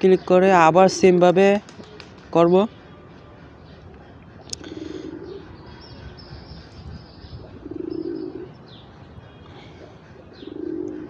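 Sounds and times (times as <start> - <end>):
bird calling low note: 2.4 - 11.0.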